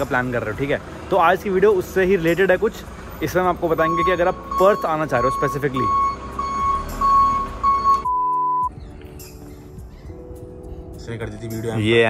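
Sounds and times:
low traffic rumble: 0.0s - 8.1s
quiet background music: 0.0s - 12.0s
loud steady beep: 3.8s - 8.7s
short high electronic beeps: 3.9s - 8.7s.

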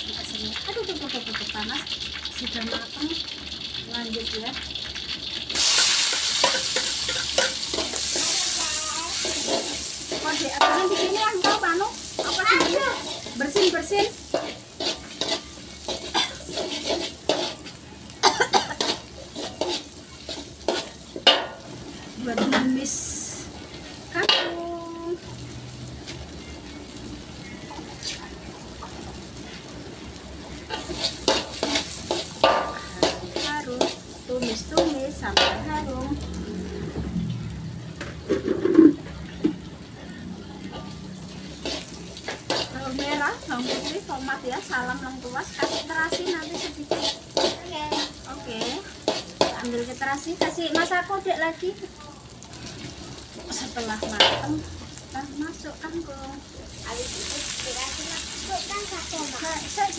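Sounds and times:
spices sizzling in hot oil: 0.0s - 59.9s
metal spatula scraping wok: 5.5s - 17.8s, 18.5s - 22.6s, 30.6s - 36.0s, 38.2s - 39.4s, 40.7s - 51.0s.

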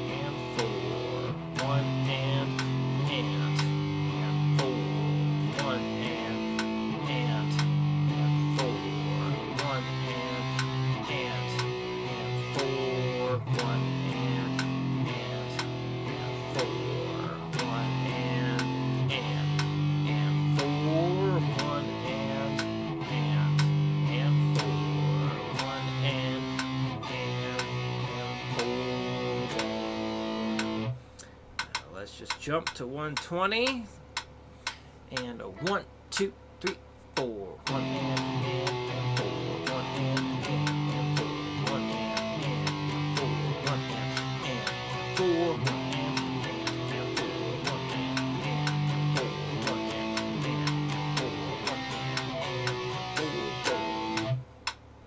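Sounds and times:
electric guitar strumming chords: 0.0s - 31.4s, 37.6s - 54.6s
metronome clicking: 0.0s - 54.8s.

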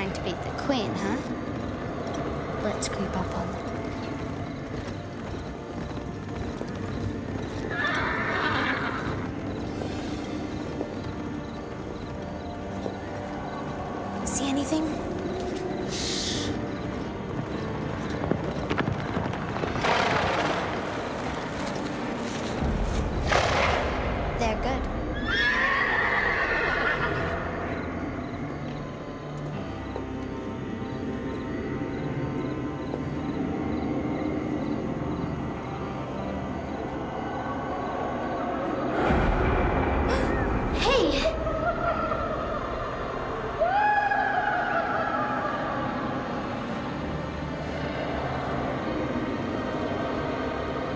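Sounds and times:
hoofbeats: 0.0s - 37.0s
tense background music: 0.0s - 50.9s
horse whinnying: 7.6s - 9.6s, 25.2s - 27.5s.

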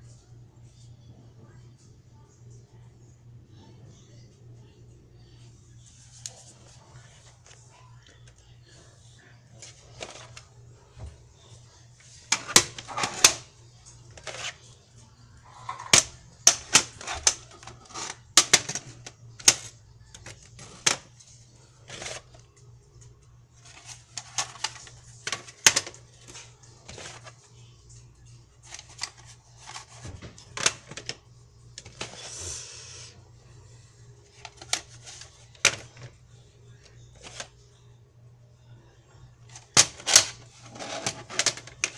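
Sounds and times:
steady low hum: 0.0s - 41.9s
plastic cassettes clacking: 9.6s - 10.5s, 12.3s - 13.5s, 14.1s - 14.6s, 15.6s - 21.1s, 21.8s - 22.4s, 23.6s - 27.4s, 28.6s - 31.2s, 31.8s - 32.2s, 34.3s - 36.1s, 37.1s - 37.5s, 39.5s - 41.9s.

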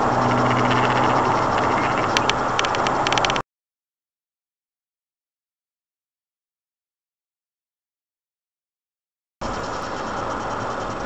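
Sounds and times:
low engine hum: 0.0s - 3.4s
tyre and wind road noise: 0.0s - 3.4s.

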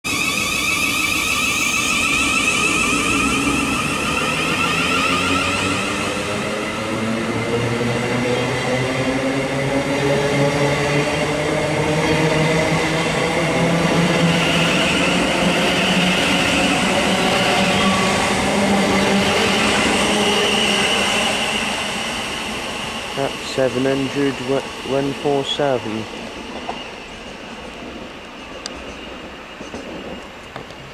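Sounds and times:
electric train motor whine: 0.1s - 9.2s, 12.2s - 24.8s
train running rumble: 0.1s - 30.9s.

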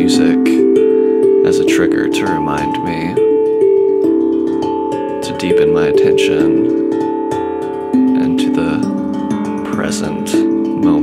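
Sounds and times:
steel tongue drum notes: 0.0s - 11.0s.

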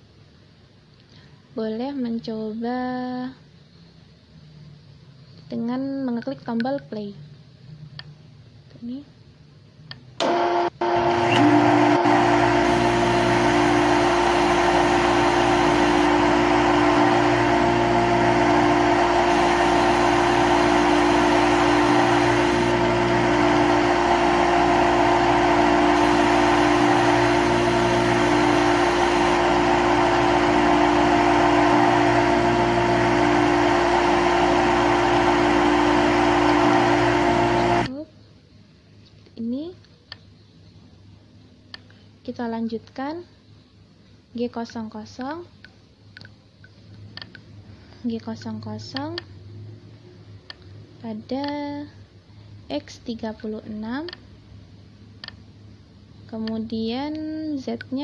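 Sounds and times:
lathe machine hum: 10.2s - 37.9s.

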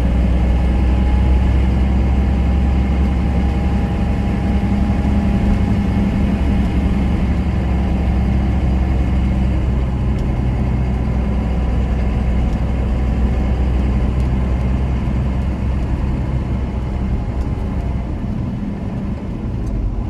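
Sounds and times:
diesel truck engine running: 0.0s - 20.0s
tyre and road noise: 0.0s - 20.0s.

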